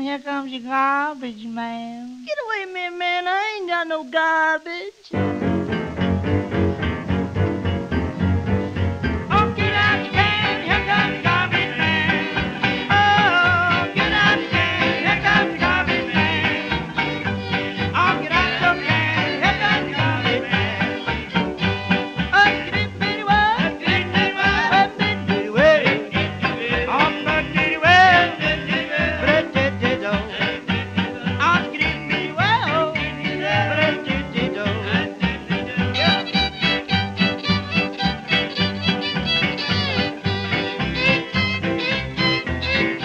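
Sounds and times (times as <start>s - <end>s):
western swing band playing: 5.1s - 43.0s.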